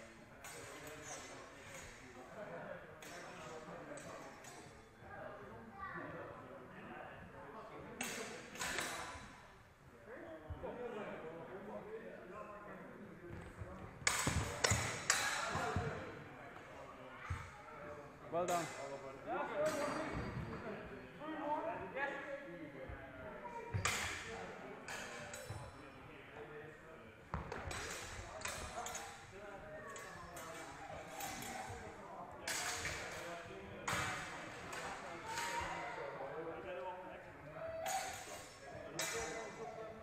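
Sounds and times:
chatter in a hall: 0:00.0 - 0:40.0.

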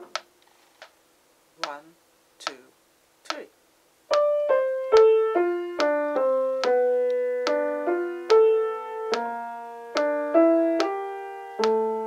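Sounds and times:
metronome ticking: 0:01.6 - 0:03.5, 0:04.1 - 0:08.5, 0:09.1 - 0:11.0, 0:11.6 - 0:11.8
person counting in: 0:01.6 - 0:04.3
piano chords: 0:04.1 - 0:12.0.

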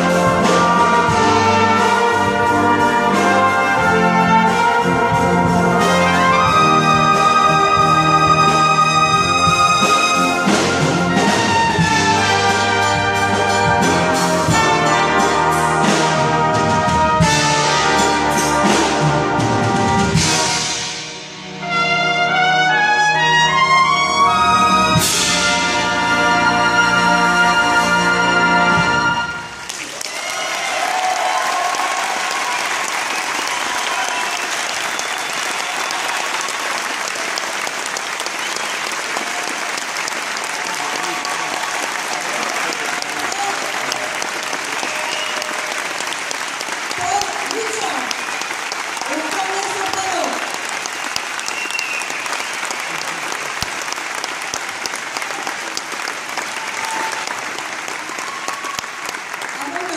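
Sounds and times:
audience applauding: 0:00.0 - 0:20.6, 0:29.2 - 0:59.9.

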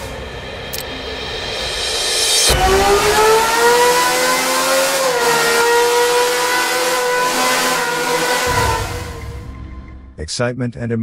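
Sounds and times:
car engine at high revs: 0:02.1 - 0:09.6.

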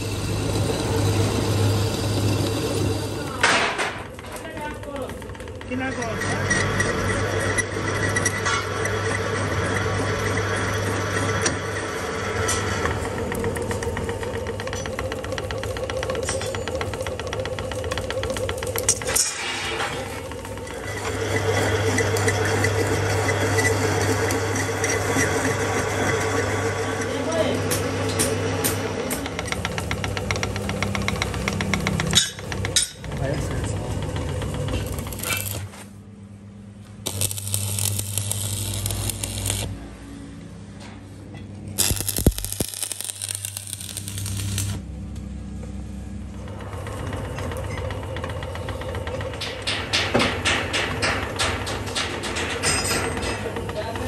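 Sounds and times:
lathe motor hum: 0:00.0 - 0:40.7, 0:41.8 - 0:49.4
cutting tool ticking and clattering: 0:03.4 - 0:06.2, 0:29.1 - 0:35.6, 0:41.8 - 0:44.8.

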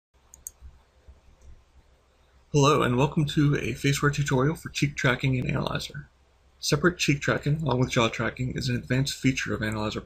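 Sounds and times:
faint low hum: 0:00.2 - 0:10.0
computer mouse click: 0:00.3 - 0:00.7.

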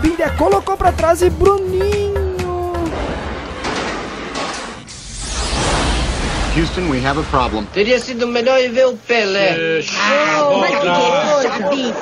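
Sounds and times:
rocket engines roaring: 0:02.7 - 0:08.8.

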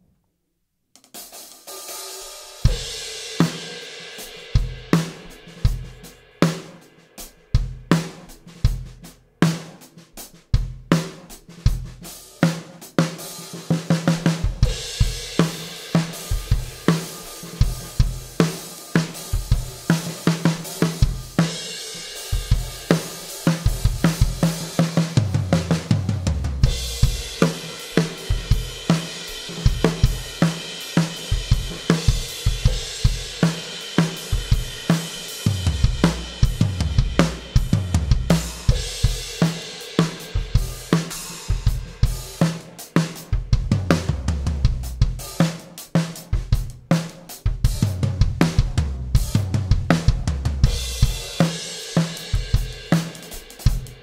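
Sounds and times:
drum kit groove: 0:01.0 - 0:54.0
deep low tom passages: 0:25.2 - 0:27.6, 0:35.4 - 0:39.4, 0:43.4 - 0:45.2, 0:47.7 - 0:51.3
cymbals washing: 0:26.6 - 0:43.0.

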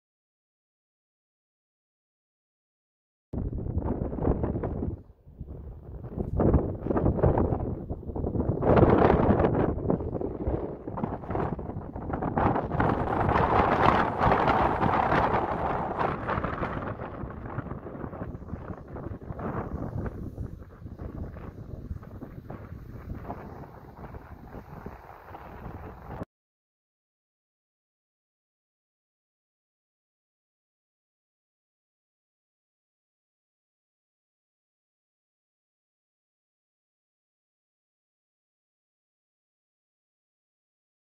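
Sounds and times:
wind buffeting microphone: 0:03.4 - 0:26.3.

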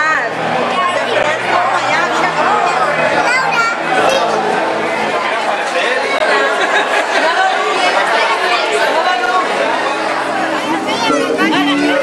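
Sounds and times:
babble of many voices: 0:00.0 - 0:12.0.

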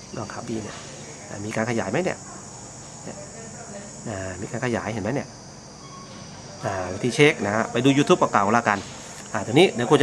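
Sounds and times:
high-pitched insect chirring: 0:00.0 - 0:10.0.

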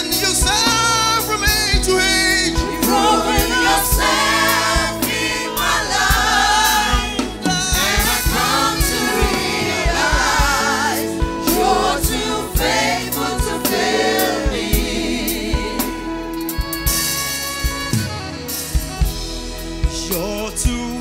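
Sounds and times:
group singing gospel song: 0:00.0 - 0:17.0
drum hits: 0:02.6 - 0:15.2.

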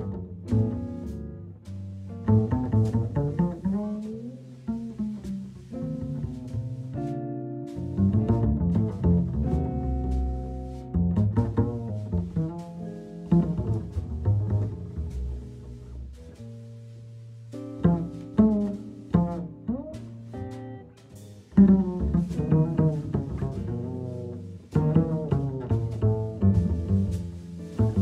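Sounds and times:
plucked upright bass: 0:00.0 - 0:28.0.

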